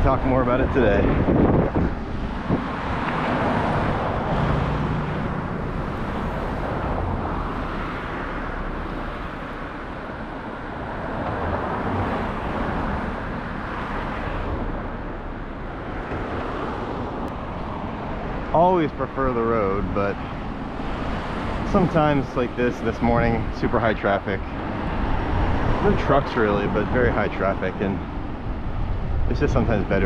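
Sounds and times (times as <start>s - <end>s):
cars passing close by: 0.0s - 30.0s.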